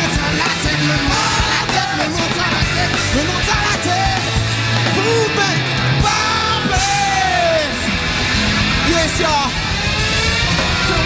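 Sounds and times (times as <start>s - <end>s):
singer yelling a long note: 0.0s - 8.0s, 10.4s - 11.0s
live rock band playing: 0.0s - 11.0s.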